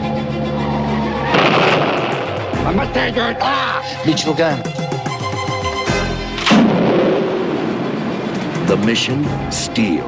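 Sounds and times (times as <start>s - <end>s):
music: 0.0s - 6.8s, 8.3s - 10.0s
loud explosion: 1.3s - 2.5s, 6.5s - 8.4s.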